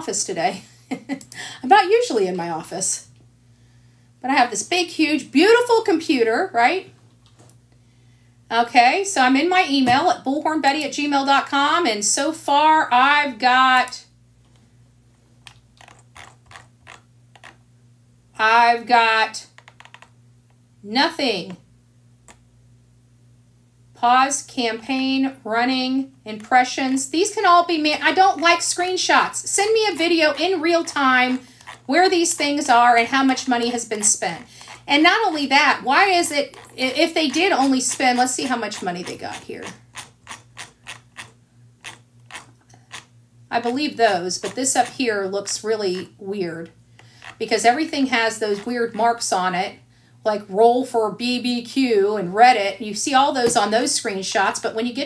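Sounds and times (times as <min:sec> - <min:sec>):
faint steady hum: 0:00.0 - 0:55.0
computer mouse clicking: 0:19.6 - 0:20.1, 0:39.0 - 0:43.1.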